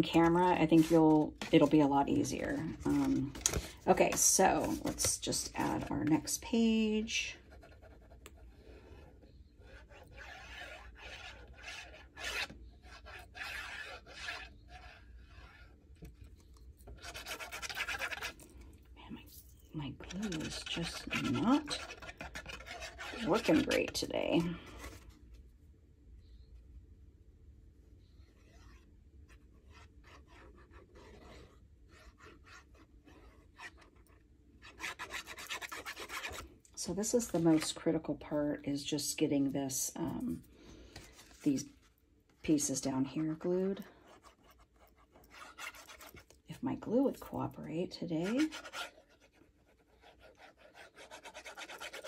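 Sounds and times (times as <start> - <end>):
glue bottle scratching paper: 9.8 - 15.7, 17.0 - 18.4, 20.0 - 24.5, 44.2 - 46.3, 48.2 - 52.0.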